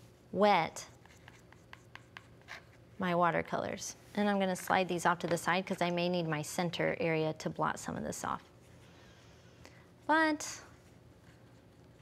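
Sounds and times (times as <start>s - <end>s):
paintbrush tapping and scraping palette: 0.9s - 2.8s.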